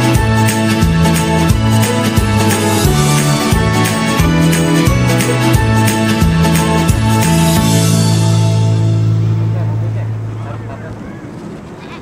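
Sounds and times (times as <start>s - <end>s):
held low music chord: 0.0s - 11.0s
faint voices: 9.4s - 12.0s.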